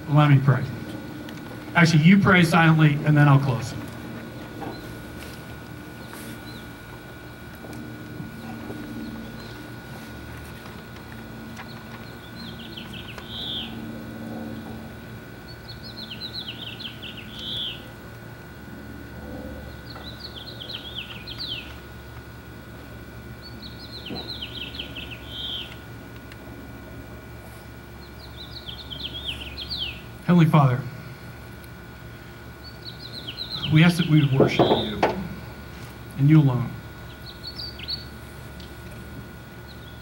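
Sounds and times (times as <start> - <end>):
faint steady hum: 0.0 - 40.0
songbird singing: 0.1 - 18.8, 19.4 - 26.2, 27.2 - 40.0.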